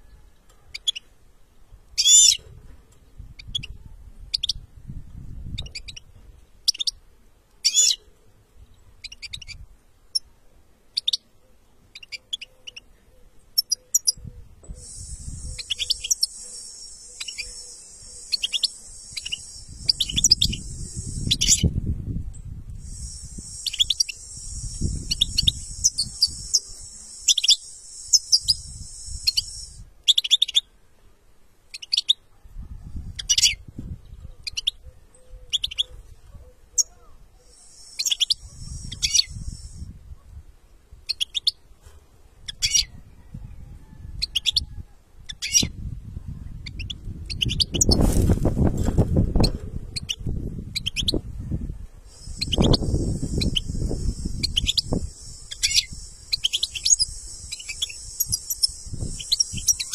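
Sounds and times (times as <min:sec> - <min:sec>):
goldfinch twittering song: 0:14.8 - 0:21.7, 0:22.8 - 0:30.6, 0:52.2 - 0:59.9.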